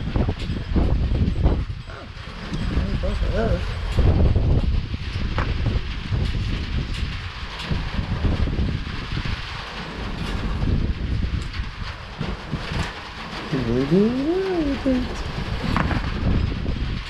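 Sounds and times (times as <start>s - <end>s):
storm wind on microphone: 0.0s - 17.0s.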